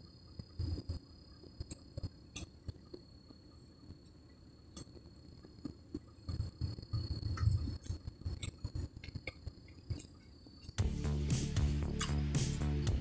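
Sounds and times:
faint high-pitched whine: 0.0 - 13.0
low background hum: 0.0 - 13.0.

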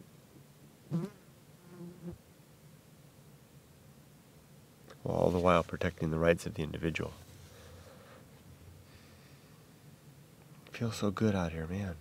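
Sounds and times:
flying insect buzzing: 0.9 - 2.2.

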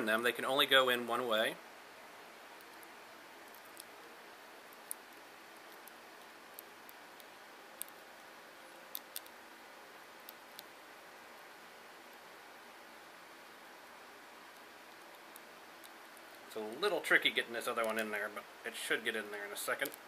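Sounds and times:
low steady hiss: 0.0 - 20.0.

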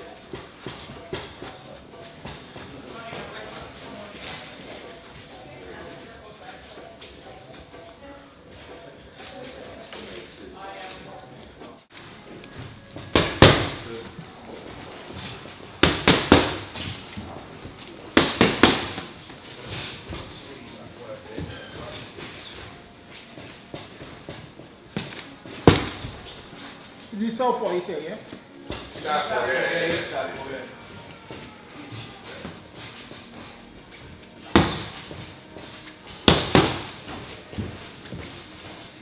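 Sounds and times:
boxing gloves punching: 13.0 - 13.9, 15.8 - 16.8, 18.1 - 19.2, 25.0 - 26.2, 34.5 - 35.2, 36.2 - 37.2.

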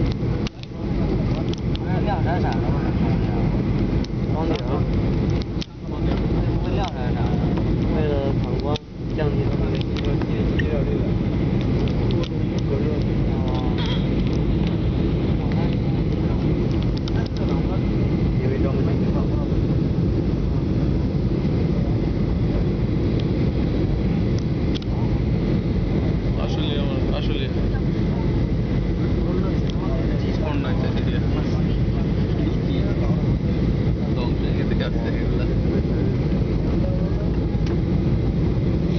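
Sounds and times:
airliner cabin drone: 0.0 - 38.9.

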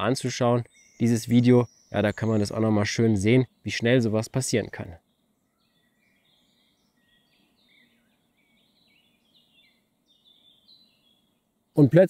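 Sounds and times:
bird chirping: 0.0 - 12.0
faint background hiss: 0.0 - 12.0.

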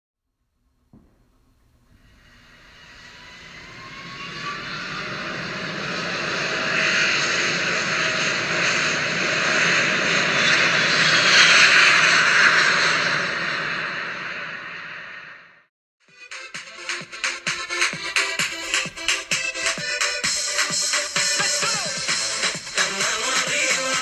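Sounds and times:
jet engines whining and roaring: 1.0 - 15.7, 16.3 - 24.0.

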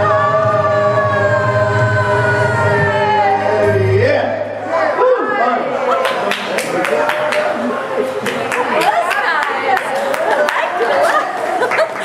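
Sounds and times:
man singing a long note: 0.0 - 4.6.

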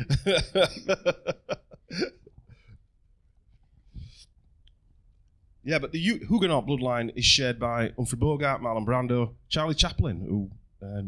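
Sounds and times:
man laughing into microphone: 0.0 - 2.7
breathy chuckle: 0.0 - 2.8.

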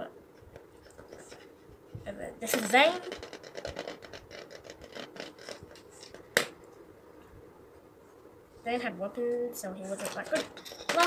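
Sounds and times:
plastic spinning top rattling: 2.4 - 6.5.

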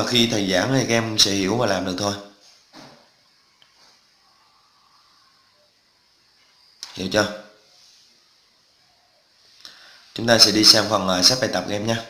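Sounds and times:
man speaking: 0.0 - 2.3, 6.8 - 7.5, 10.1 - 12.0
faint hiss: 0.0 - 12.0.

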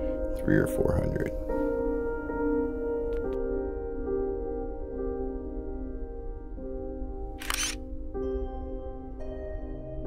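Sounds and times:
soft ambient music: 0.0 - 10.0
camera shutter: 7.4 - 7.8.

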